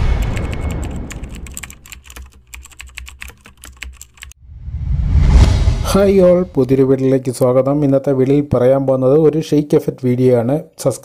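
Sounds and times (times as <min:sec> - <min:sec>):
low rumble: 0:04.4 - 0:07.0.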